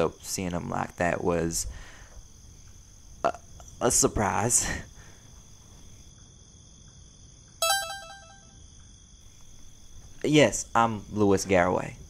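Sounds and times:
faint steady background noise: 0:00.0 - 0:12.0
electronic notification chime: 0:07.6 - 0:08.4.

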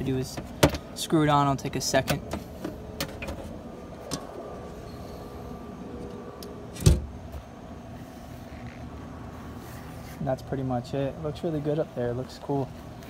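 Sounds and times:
low background hum: 0:00.0 - 0:13.0
metal hatch lid thump: 0:06.8 - 0:07.2.

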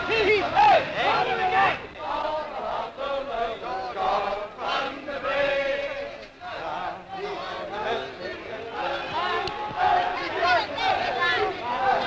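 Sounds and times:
men chanting in unison: 0:00.0 - 0:12.0.

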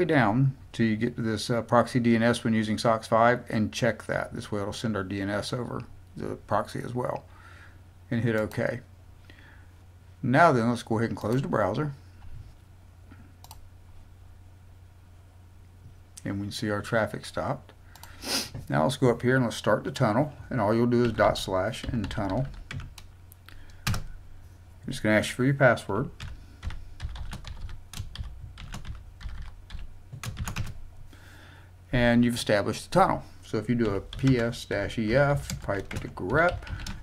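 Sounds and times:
faint low hum: 0:00.0 - 0:37.0
keyboard typing: 0:21.0 - 0:23.1, 0:23.7 - 0:24.1, 0:26.2 - 0:30.8, 0:33.8 - 0:37.0.

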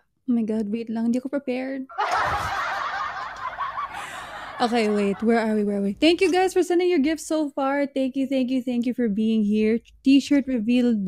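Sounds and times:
woman laughing: 0:01.9 - 0:05.7.

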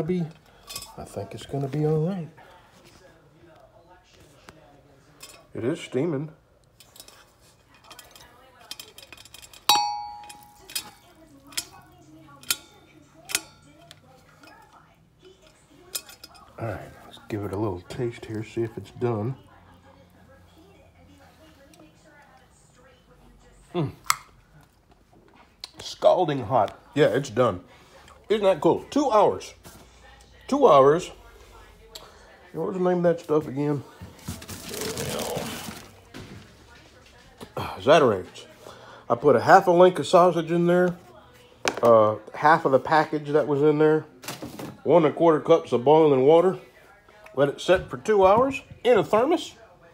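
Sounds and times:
metal jar clinking against glass bowl: 0:07.8 - 0:11.8
plastic bag crinkling: 0:34.2 - 0:36.1.

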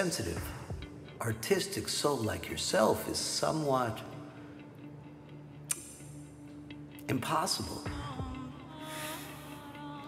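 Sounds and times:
low steady music drone: 0:00.0 - 0:10.0
sharp click: 0:05.7 - 0:06.0.

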